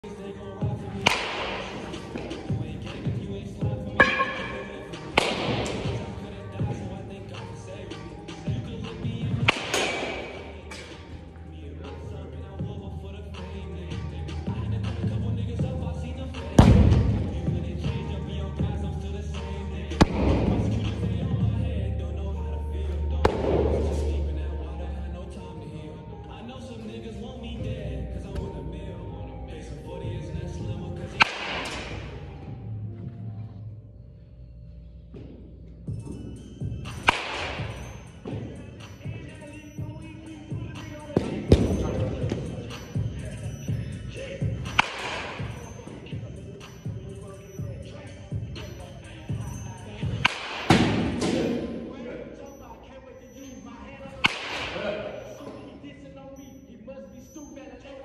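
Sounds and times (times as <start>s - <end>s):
background music: 0.0s - 58.0s
wooden bat hitting ball: 1.0s - 3.0s, 3.9s - 6.2s, 9.4s - 11.0s, 31.1s - 32.1s, 36.9s - 38.5s, 44.6s - 45.7s, 50.0s - 51.7s, 54.2s - 54.9s.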